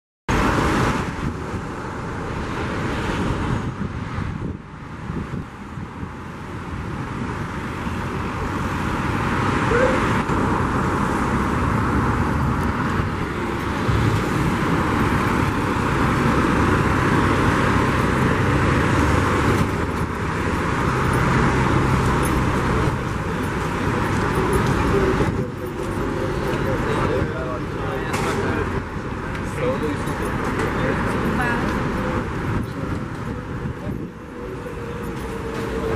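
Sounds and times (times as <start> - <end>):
car engines passing: 0.3 - 35.9
road noise: 0.3 - 35.9.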